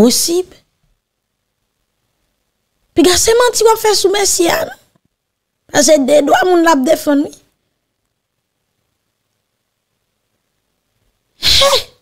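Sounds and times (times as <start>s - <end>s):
person sneezing: 11.4s - 12.0s.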